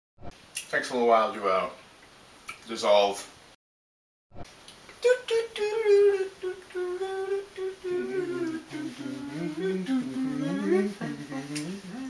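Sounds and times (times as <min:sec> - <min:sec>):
person humming a tune: 0:05.0 - 0:12.0.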